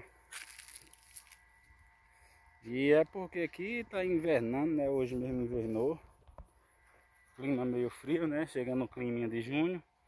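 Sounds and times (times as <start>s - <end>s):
leaves rustling against phone: 0.0s - 2.8s.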